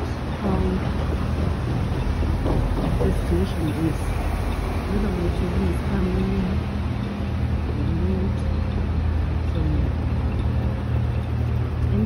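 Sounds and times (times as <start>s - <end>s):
city street traffic: 0.0s - 12.0s
wind buffeting microphone: 0.0s - 12.0s.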